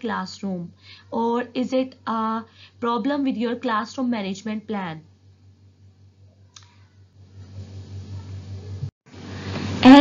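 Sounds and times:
low steady hum: 0:00.0 - 0:10.0
faint click: 0:06.5 - 0:06.8.

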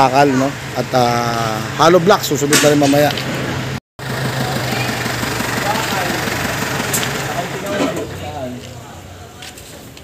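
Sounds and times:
truck engine idling: 0:03.2 - 0:09.4.

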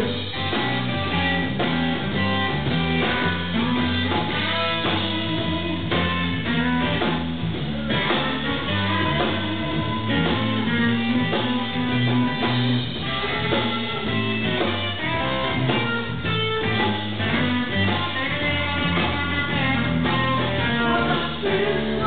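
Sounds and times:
bass guitar: 0:00.0 - 0:22.0
drum kit: 0:00.0 - 0:22.0
electric guitar: 0:00.0 - 0:22.0.

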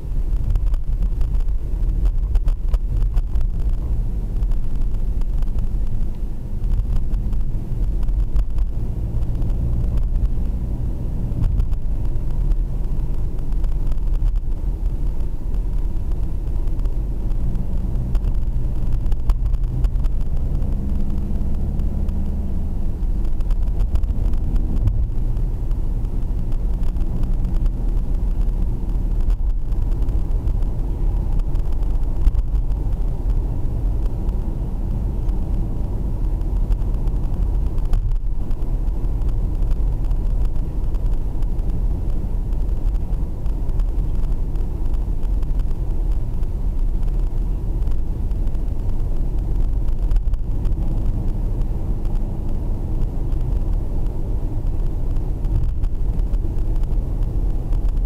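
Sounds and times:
car driving heard from inside: 0:00.0 - 0:58.0.

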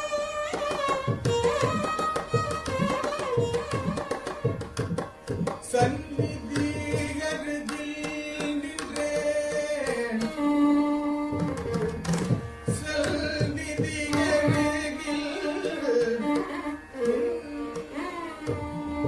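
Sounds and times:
violin: 0:00.0 - 0:19.0
drum strokes: 0:01.0 - 0:07.2, 0:11.3 - 0:14.9
man singing: 0:05.6 - 0:11.6, 0:12.6 - 0:16.4.

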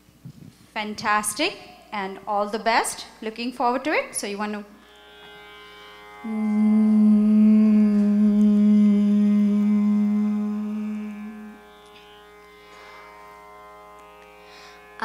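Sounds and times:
steady drone: 0:05.3 - 0:15.0
child singing a long note: 0:06.2 - 0:11.7.

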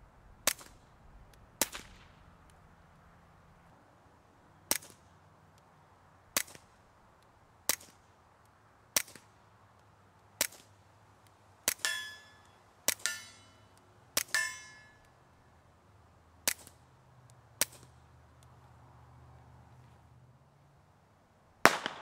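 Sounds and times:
suppressed pistol shots: 0:01.6 - 0:02.3, 0:21.6 - 0:22.0
steel target clang: 0:11.7 - 0:15.1.

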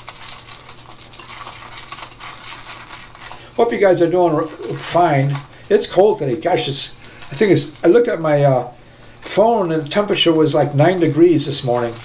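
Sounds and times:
shaving brush whipping cream: 0:00.0 - 0:08.3, 0:09.3 - 0:12.0.

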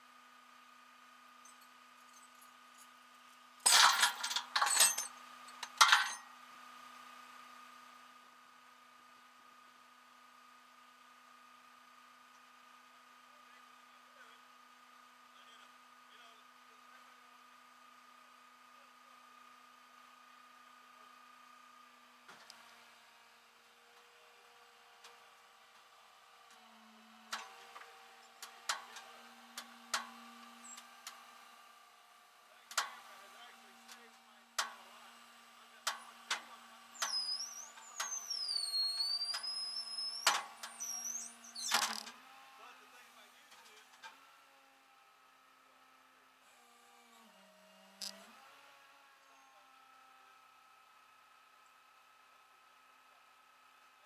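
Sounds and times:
metal clanks and clicks: 0:03.7 - 0:06.3.

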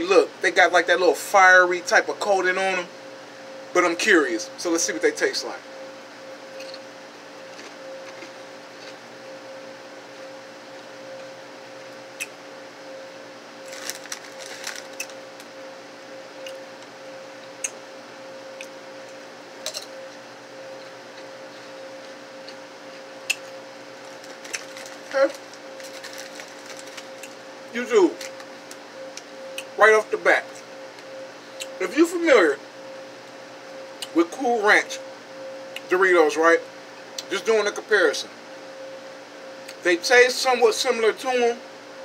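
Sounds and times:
low hum: 0:01.5 - 0:35.9
chips being chewed: 0:13.6 - 0:15.5, 0:24.1 - 0:27.4.

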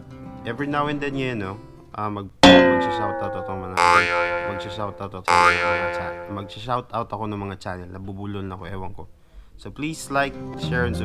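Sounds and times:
strummed acoustic guitar chords: 0:02.4 - 0:06.5.

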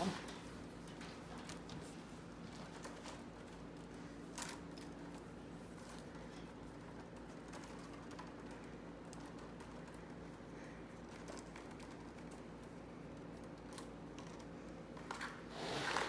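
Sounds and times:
steady low hum: 0:00.0 - 0:16.0
willow rods rustling and clicking: 0:00.0 - 0:16.0.

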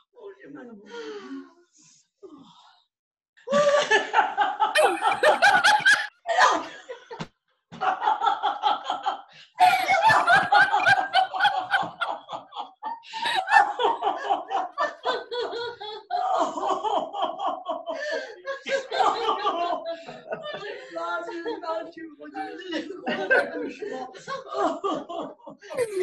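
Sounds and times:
women laughing together: 0:03.5 - 0:07.2, 0:07.8 - 0:26.0.

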